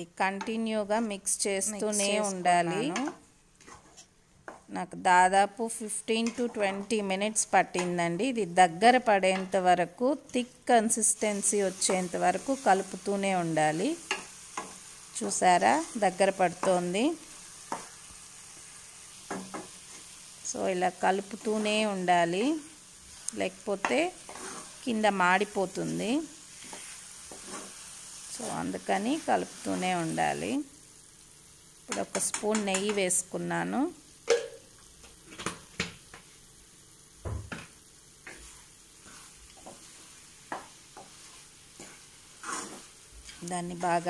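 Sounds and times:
faint sizzle: 0.0 - 44.0
spatula scraping a pan: 3.0 - 4.1, 23.1 - 24.9, 25.8 - 28.2, 38.2 - 44.0.

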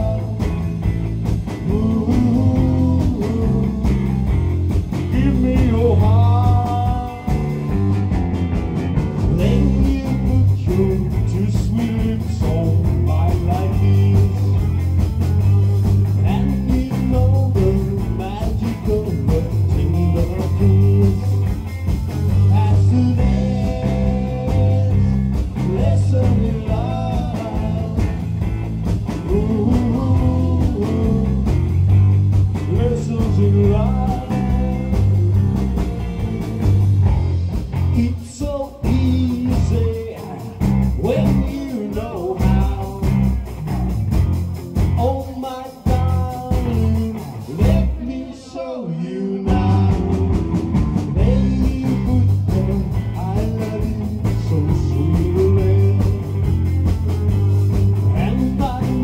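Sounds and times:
drum kit: 0.0 - 48.4, 49.0 - 59.0
bass line: 0.0 - 59.0
electric guitars: 0.0 - 59.0
live rock and roll band: 0.0 - 59.0.

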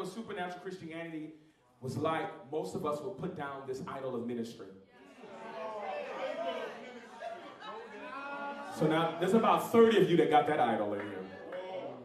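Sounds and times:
amplified preacher speaking: 0.0 - 4.8, 8.7 - 11.4
audience voices talking: 5.0 - 12.0.

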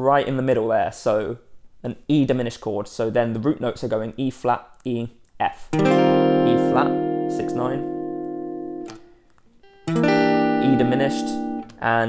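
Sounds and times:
clean electric guitar chords: 5.8 - 11.8.

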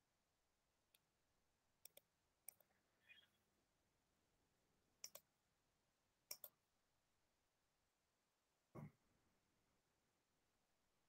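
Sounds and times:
computer mouse clicks: 1.8 - 3.2, 5.0 - 5.3, 6.3 - 6.6.

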